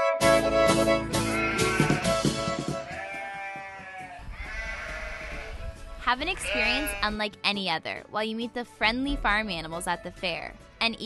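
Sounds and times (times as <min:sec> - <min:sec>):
fiddle and guitar music: 0:00.0 - 0:11.0
goat bleating: 0:01.2 - 0:07.2.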